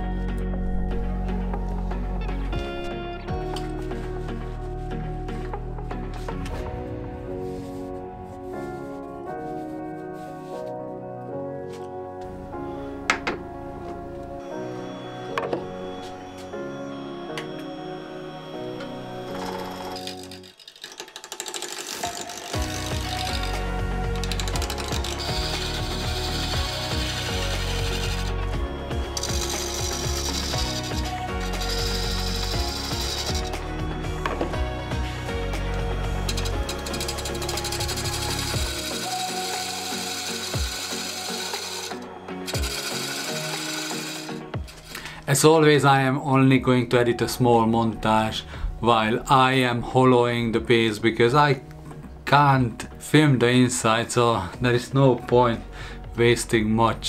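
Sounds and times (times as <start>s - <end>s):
gouge cutting wood on a lathe: 19.2s - 28.5s, 29.1s - 33.6s, 36.1s - 44.8s.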